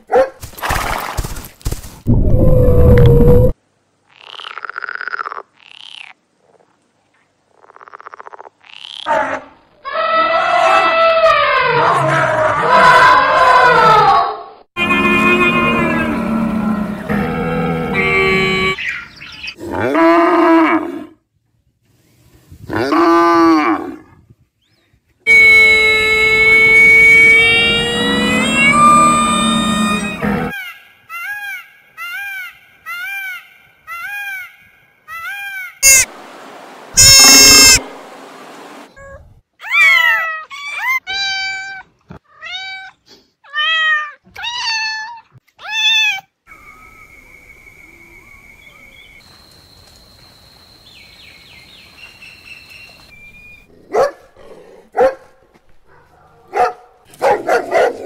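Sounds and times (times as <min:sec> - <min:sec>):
camel calling: 0:25.3 - 0:30.8, 0:37.0 - 0:37.8
peacock calling: 0:25.3 - 0:36.2, 0:36.9 - 0:38.1.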